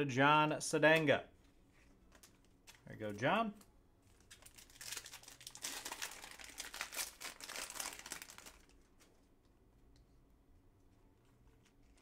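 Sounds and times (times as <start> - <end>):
foil wrapper crinkling and tearing: 4.1 - 9.1.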